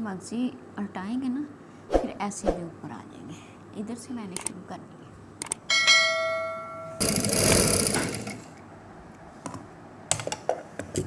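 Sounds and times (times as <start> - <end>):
swoosh: 1.9 - 2.7
bright bell-like ding: 5.7 - 7.0.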